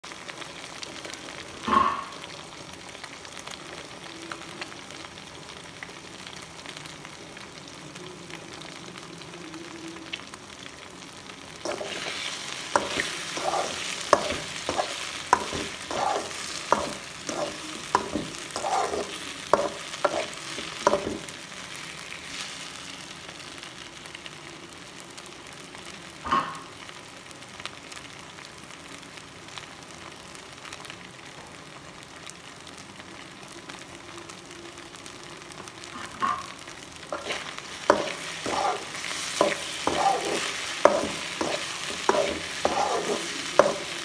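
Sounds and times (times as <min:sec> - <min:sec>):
egg sizzling in a pan: 0:00.0 - 0:08.0, 0:10.0 - 0:44.0
spatula scraping a pan: 0:11.7 - 0:21.3, 0:37.1 - 0:44.0.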